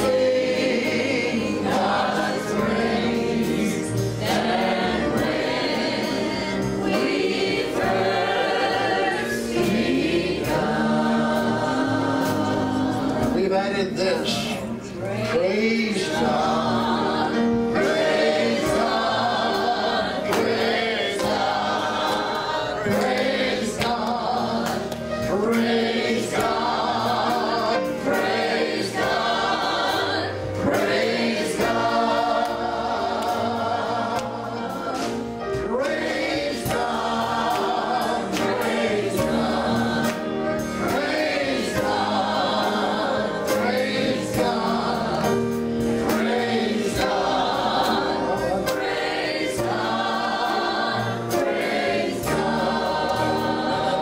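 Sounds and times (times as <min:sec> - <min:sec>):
instrumental accompaniment with beat: 0:00.0 - 0:15.3, 0:16.1 - 0:54.0
gospel choir singing: 0:00.0 - 0:54.0.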